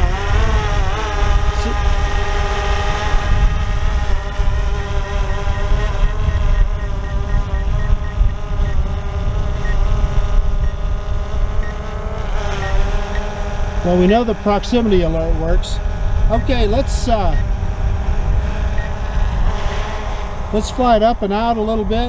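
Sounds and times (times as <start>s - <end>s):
wind buffeting microphone: 0.0s - 12.8s, 13.5s - 22.0s
drone propellers whining: 0.0s - 22.0s
faint repeating beep: 4.2s - 8.8s, 16.3s - 16.6s, 17.3s - 17.5s.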